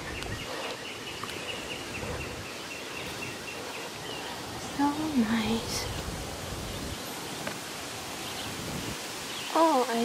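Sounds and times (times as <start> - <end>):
woodland hiss: 0.0 - 10.0
woman speaking: 4.6 - 6.0, 9.5 - 10.0.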